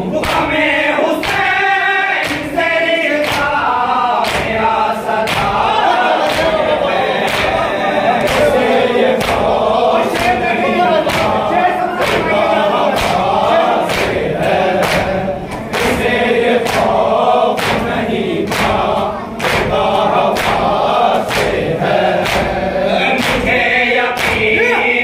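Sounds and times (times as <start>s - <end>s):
men chanting in unison: 0.0s - 25.0s.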